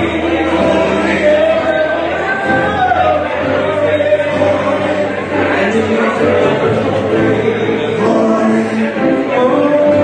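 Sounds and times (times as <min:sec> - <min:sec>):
backing voices singing: 0:00.0 - 0:10.0
gospel band playing: 0:00.0 - 0:10.0.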